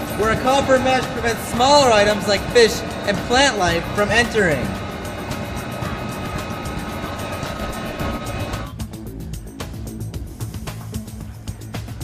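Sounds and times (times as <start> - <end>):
steady machinery noise: 0.0 - 8.8
held hum tones: 0.0 - 11.4
background music: 0.0 - 12.0.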